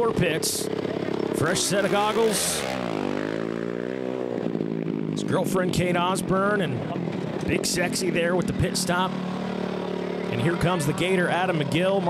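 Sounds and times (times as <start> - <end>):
quad bike engine revving: 0.0 - 12.0.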